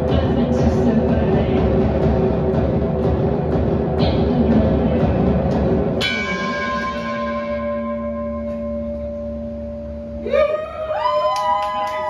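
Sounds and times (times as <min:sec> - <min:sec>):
bell-like chord ringing: 0:06.0 - 0:10.3.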